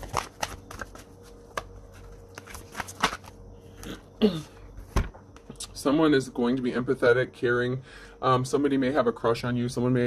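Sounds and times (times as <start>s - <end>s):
cards being shuffled: 0.0s - 3.4s.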